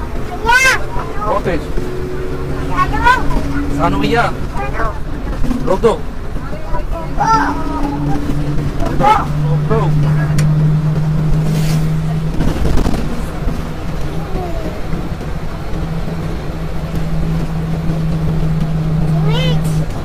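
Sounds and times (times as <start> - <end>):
bus engine humming: 0.0 - 20.0
road rumble: 0.0 - 20.0
child's rising vocal sound: 6.9 - 9.4, 14.0 - 15.0.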